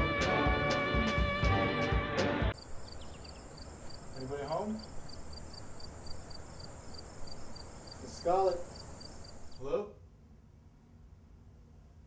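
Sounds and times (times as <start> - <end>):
faint continuous hiss: 2.5 - 12.0
crickets chirping: 2.6 - 9.7.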